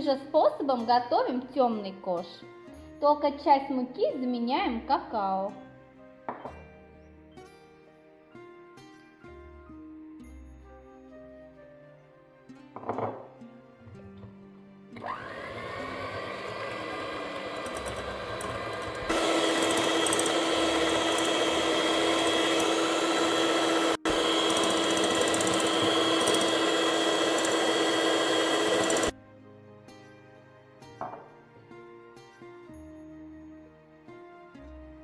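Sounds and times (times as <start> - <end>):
electric hand mixer whining: 15.0 - 29.1.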